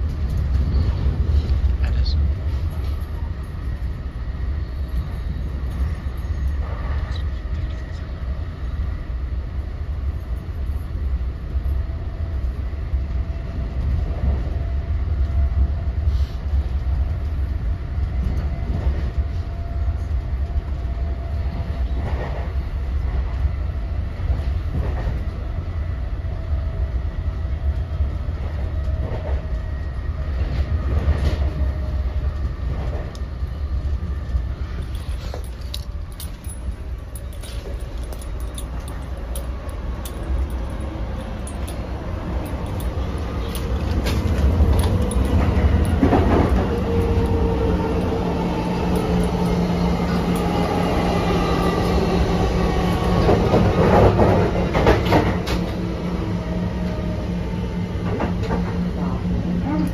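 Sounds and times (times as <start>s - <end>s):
wheels rumbling on rail: 0.0s - 59.9s.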